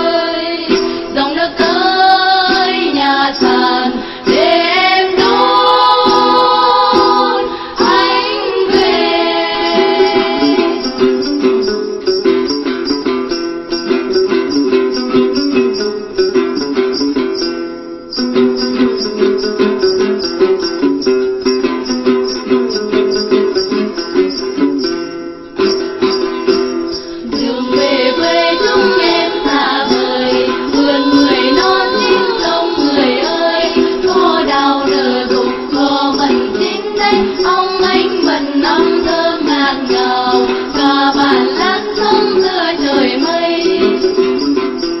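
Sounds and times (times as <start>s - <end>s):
women singing: 0.0s - 11.4s, 27.1s - 44.6s
plucked lutes: 0.0s - 45.0s.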